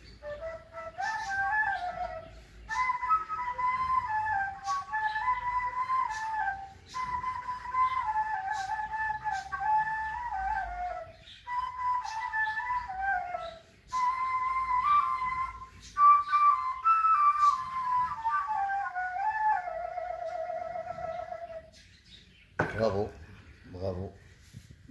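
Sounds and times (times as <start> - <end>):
flute playing slow melody: 0.0 - 21.8.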